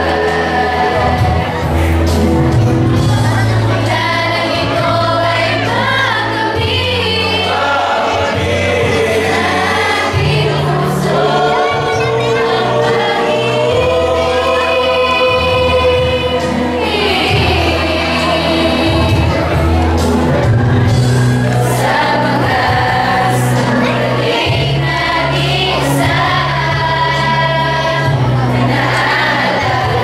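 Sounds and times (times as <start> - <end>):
choir singing: 0.0 - 30.0
sustained low bass notes: 0.0 - 30.0.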